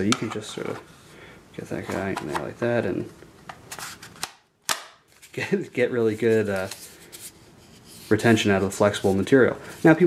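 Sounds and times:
sharp holster snap: 4.2 - 5.0.

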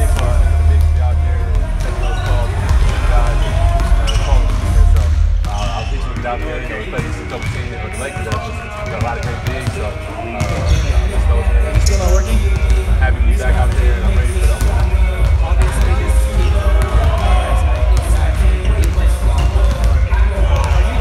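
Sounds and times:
man talking: 0.0 - 21.0
basketballs bouncing on gym floor: 0.1 - 21.0.

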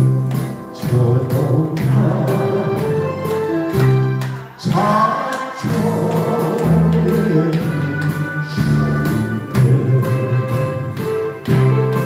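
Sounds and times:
karaoke backing track: 0.0 - 12.0
man singing into microphone: 0.6 - 3.3, 4.6 - 11.0.

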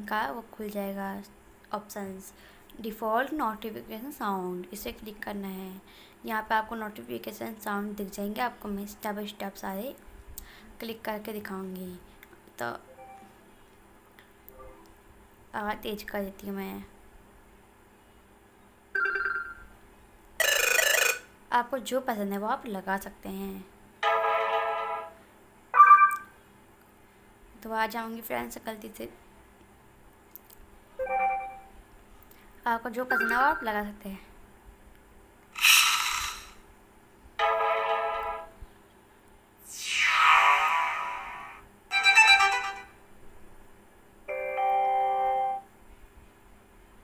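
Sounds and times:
smartphone notification tone: 19.0 - 19.6, 24.0 - 25.2, 25.8 - 26.3, 31.0 - 31.7, 33.1 - 33.7, 37.4 - 38.5.

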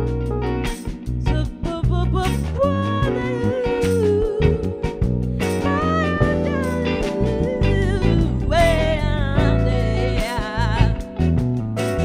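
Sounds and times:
drums: 0.0 - 9.6, 10.2 - 12.0
electric bass: 0.0 - 12.0
electric guitar: 0.0 - 12.0
electric piano: 0.0 - 12.0
sliding melody line: 5.4 - 11.2.

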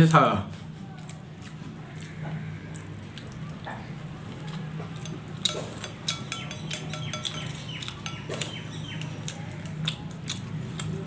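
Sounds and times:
steady low hum: 0.3 - 11.0
chopsticks clicking on ceramic bowls: 4.4 - 11.0.

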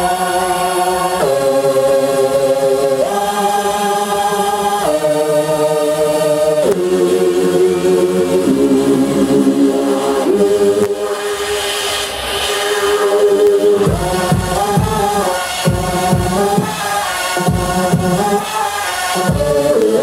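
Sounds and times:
electronic music choir-like chords: 0.0 - 20.0.

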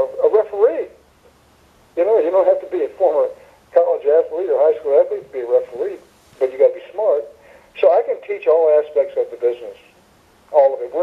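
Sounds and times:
person talking: 2.0 - 9.9, 10.5 - 11.0.

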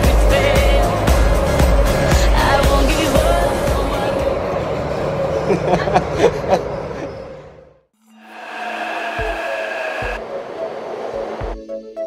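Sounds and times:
background music with kick drum: 0.0 - 4.0
metro train passing: 2.8 - 12.0.

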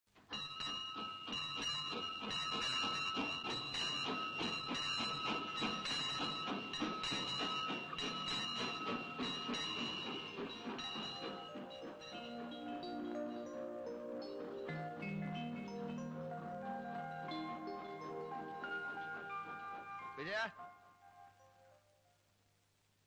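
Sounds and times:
steam locomotive chuffing: 0.2 - 16.5, 17.1 - 20.3.

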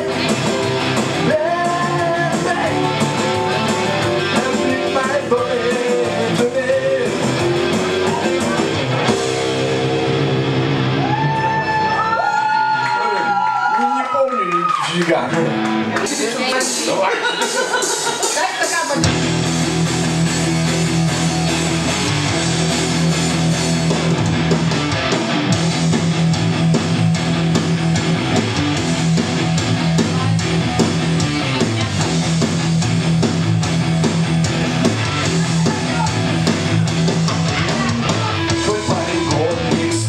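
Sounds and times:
electric guitar: 0.0 - 13.7, 14.7 - 17.5, 18.2 - 40.0
bass: 0.0 - 40.0
drums: 0.0 - 40.0.

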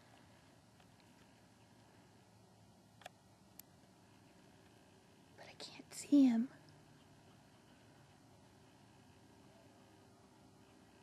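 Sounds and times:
soft clicks: 3.0 - 3.7.

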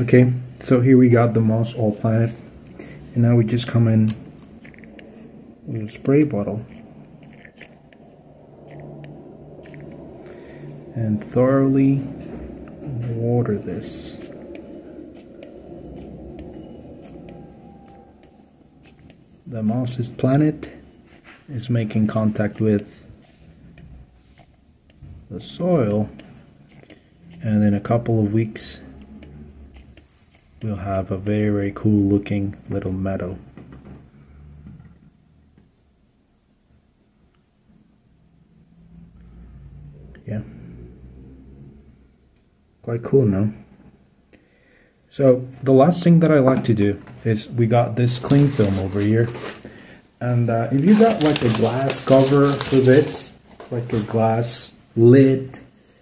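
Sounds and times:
low handling noise: 0.0 - 35.9
faint low hum: 0.0 - 56.0.

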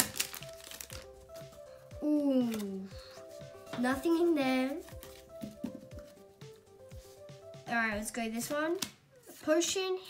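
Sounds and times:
foil wrapper crinkling: 0.0 - 1.3
quiet background music: 0.0 - 10.0.

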